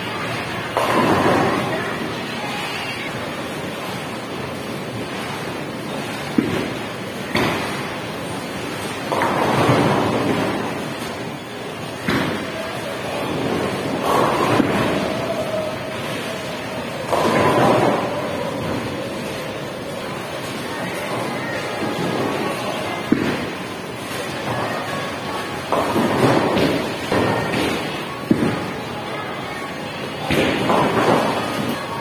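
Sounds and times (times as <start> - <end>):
bowling balls rolling: 0.4 - 32.0
balls crashing into pins: 13.3 - 15.3.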